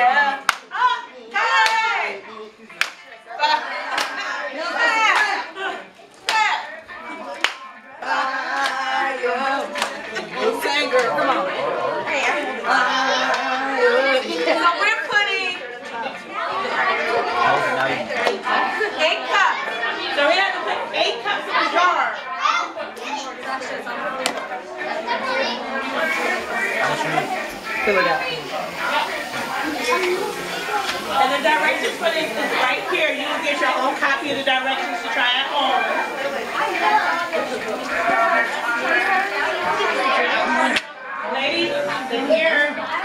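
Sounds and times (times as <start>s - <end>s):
children and adults chattering: 0.0s - 43.0s
sharp handclaps: 0.5s - 0.7s, 2.8s - 3.0s, 7.4s - 7.7s, 9.8s - 10.0s.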